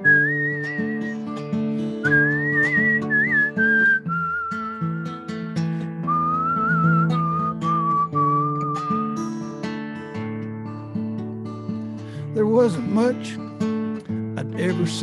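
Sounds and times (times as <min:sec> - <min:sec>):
man whistling a melody: 0:00.0 - 0:09.7
strummed acoustic guitar: 0:00.0 - 0:15.0.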